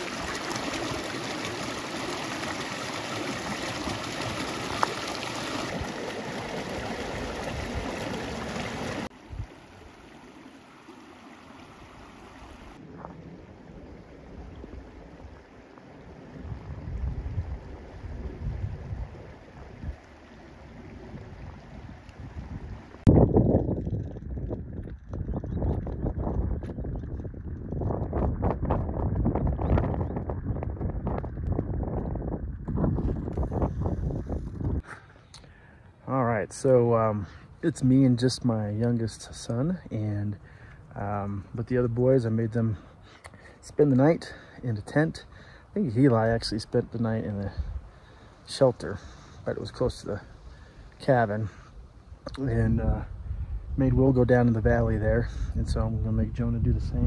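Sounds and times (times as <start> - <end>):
water rushing over rocks: 0.0 - 13.2
wind buffeting microphone: 16.3 - 20.1, 20.8 - 34.9, 52.4 - 57.0.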